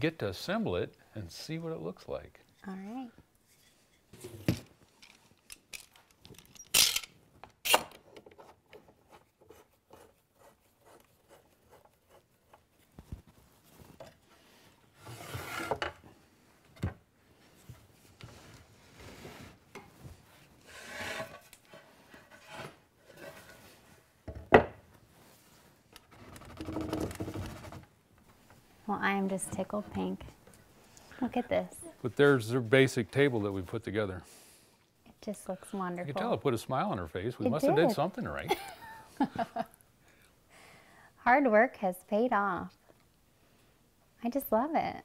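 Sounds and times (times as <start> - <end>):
wooden joints scraping together: 20.6 - 23.6.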